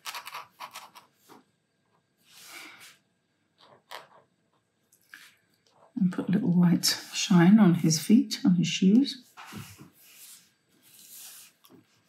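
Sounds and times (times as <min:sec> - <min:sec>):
marker nib scratching on paper: 0:00.0 - 0:01.1, 0:09.3 - 0:12.0.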